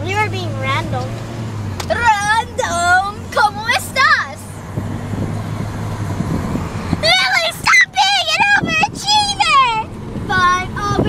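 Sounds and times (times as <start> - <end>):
car road noise hum: 0.0 - 11.0.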